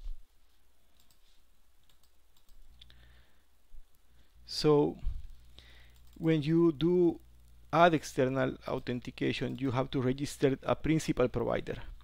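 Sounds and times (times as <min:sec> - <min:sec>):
low steady hum: 0:00.0 - 0:12.0
computer clicks: 0:01.0 - 0:01.2, 0:01.8 - 0:03.0, 0:05.5 - 0:06.3.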